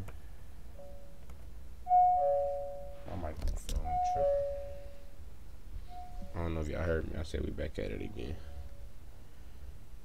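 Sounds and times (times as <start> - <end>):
doorbell chime ding-dong: 1.9 - 3.1, 3.9 - 5.1, 5.9 - 6.4.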